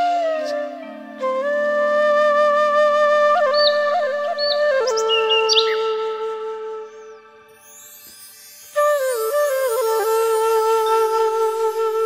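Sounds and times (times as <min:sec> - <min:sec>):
flute long note: 0:00.0 - 0:07.6, 0:08.7 - 0:12.0.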